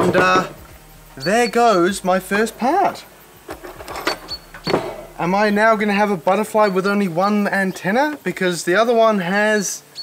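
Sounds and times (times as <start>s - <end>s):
tools knocking on wooden workbench: 3.5s - 5.1s.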